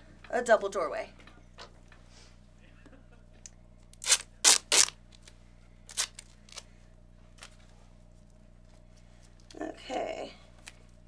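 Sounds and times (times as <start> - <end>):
duct tape ripping off roll: 3.9 - 5.0, 5.9 - 6.6.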